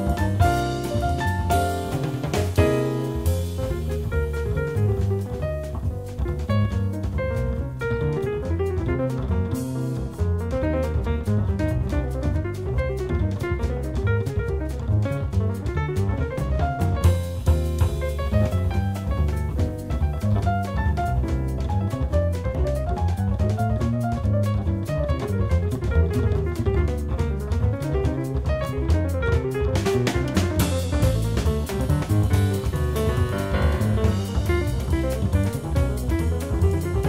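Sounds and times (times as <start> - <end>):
drum kit with cymbals: 0.0 - 37.0
jazz piano: 0.0 - 37.0
walking double bass: 0.0 - 37.0.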